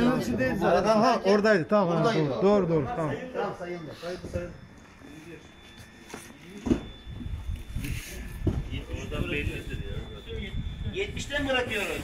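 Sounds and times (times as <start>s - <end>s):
scattered voices: 0.0s - 12.0s.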